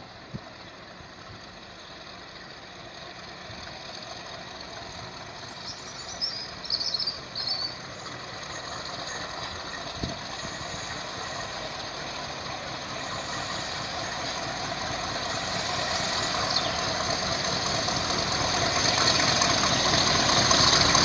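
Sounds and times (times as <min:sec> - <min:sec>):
diesel locomotive approaching: 0:00.0 - 0:21.0.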